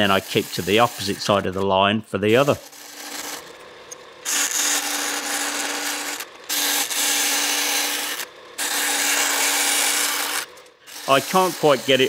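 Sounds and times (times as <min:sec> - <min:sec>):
bandsaw cutting steel: 0:00.0 - 0:12.0
bandsaw running hum: 0:00.0 - 0:12.0.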